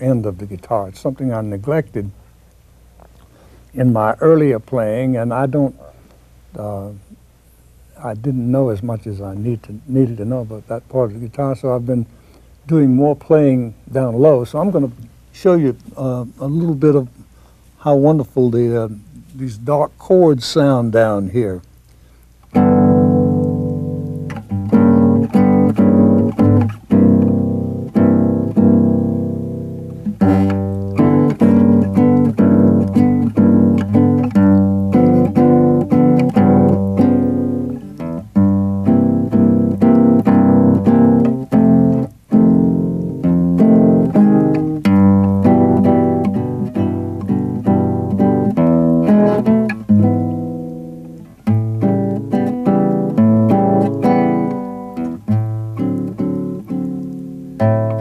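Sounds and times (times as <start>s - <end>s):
fingerstyle classical guitar blues: 22.4s - 58.0s.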